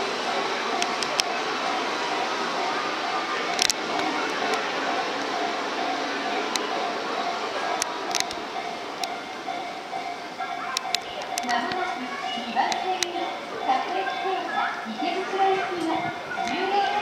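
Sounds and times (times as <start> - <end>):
sharp clicks: 7.8 - 8.4.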